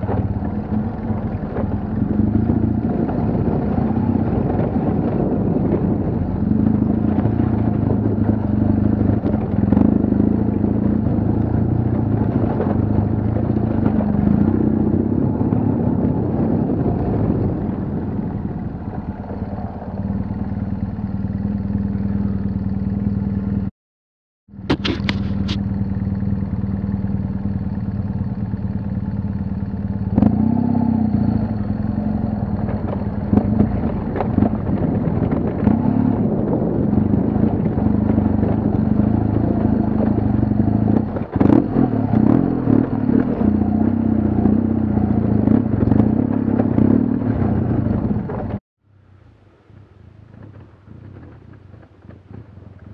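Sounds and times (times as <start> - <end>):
motorcycle clattering over ruts: 0.0 - 23.2, 24.5 - 48.6, 50.2 - 52.9
motorcycle engine running: 0.0 - 23.7, 24.5 - 52.9.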